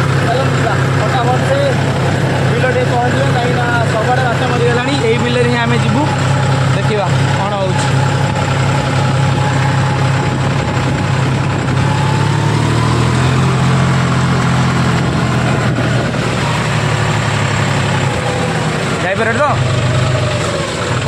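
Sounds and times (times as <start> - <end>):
tractor diesel engine running: 0.0 - 21.0.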